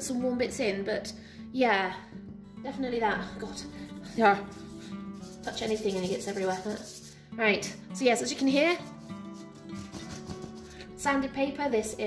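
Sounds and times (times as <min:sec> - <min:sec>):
background music: 0:00.0 - 0:12.0
hand rubbing gritty paper: 0:03.9 - 0:07.2, 0:08.7 - 0:10.9.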